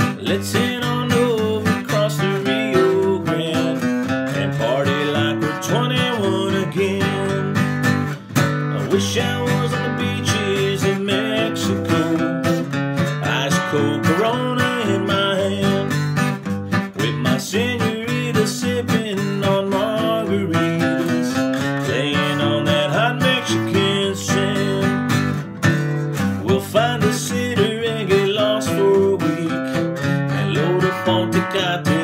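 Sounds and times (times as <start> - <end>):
man singing country song: 0.0 - 32.0
strummed acoustic guitar: 0.0 - 32.0.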